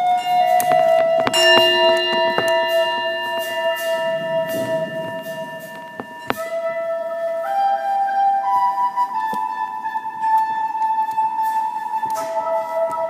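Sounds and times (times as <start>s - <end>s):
metal percussion ringing: 0.0s - 7.4s
wooden flute long note: 0.0s - 13.0s.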